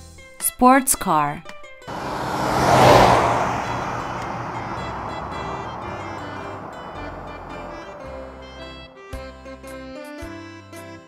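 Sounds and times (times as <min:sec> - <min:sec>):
car rushing noise: 0:01.9 - 0:08.8.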